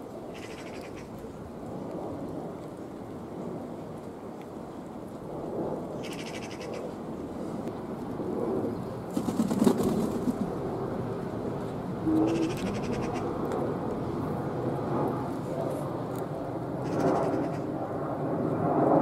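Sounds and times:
pigeon cooing: 12.2s - 13.2s.

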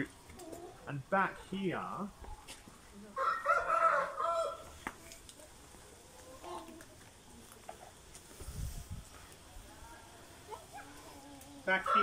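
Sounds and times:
rooster crowing: 3.2s - 4.8s, 11.7s - 12.0s.

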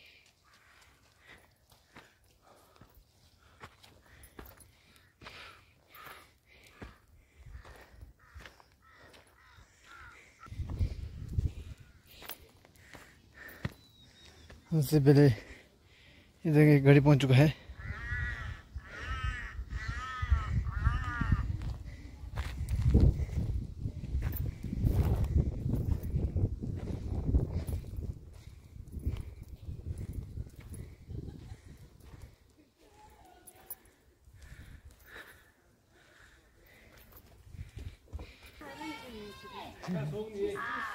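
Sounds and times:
footsteps on a dirt path: 0.0s - 40.9s
footsteps rumbling on microphone: 6.8s - 13.8s, 20.0s - 32.5s
bird calling: 7.6s - 10.5s, 13.1s - 14.8s, 40.3s - 40.9s
wind on microphone: 10.5s - 12.0s, 17.8s - 32.2s.

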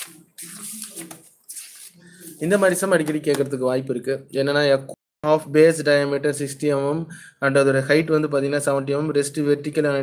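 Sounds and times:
paper pages rustling: 0.0s - 3.4s.

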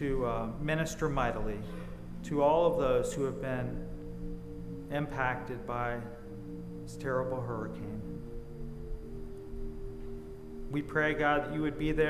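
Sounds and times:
soft music of held chords: 0.0s - 12.0s.

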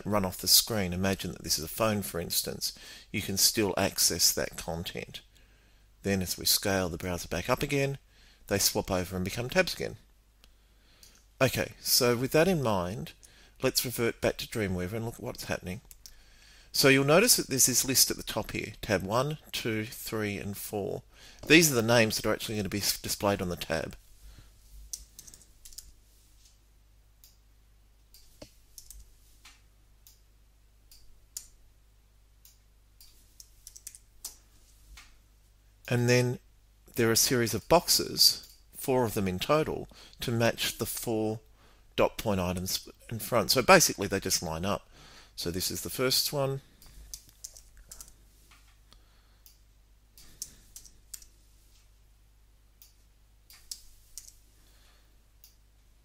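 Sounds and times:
faint keyboard typing: 24.8s - 26.6s, 28.1s - 30.2s, 32.4s - 35.2s, 46.8s - 49.6s, 50.2s - 51.8s, 52.8s - 54.5s
computer keyboard keystrokes: 24.9s - 25.9s, 28.4s - 29.1s, 33.4s - 34.4s, 47.1s - 48.2s, 53.5s - 54.4s.

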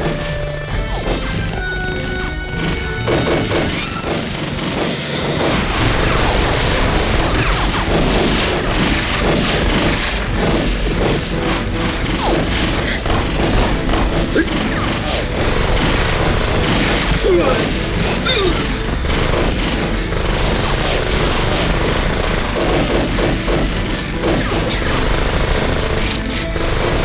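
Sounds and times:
dramatic music: 0.0s - 27.0s
explosions: 0.0s - 27.0s
gunfire: 0.0s - 27.0s.

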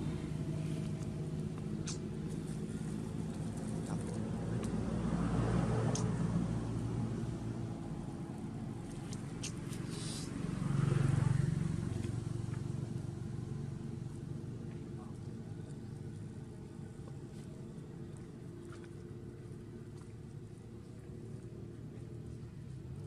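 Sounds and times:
vehicle engines humming: 0.0s - 23.0s
vehicles passing: 0.0s - 23.0s.

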